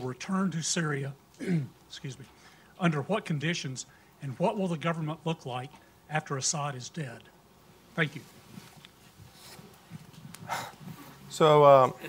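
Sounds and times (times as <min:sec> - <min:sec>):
man breathing into microphone: 0:10.4 - 0:11.2.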